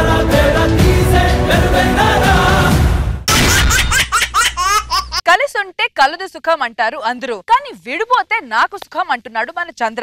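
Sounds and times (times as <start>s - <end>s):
high-pitched laughter bursts: 3.3s - 5.2s.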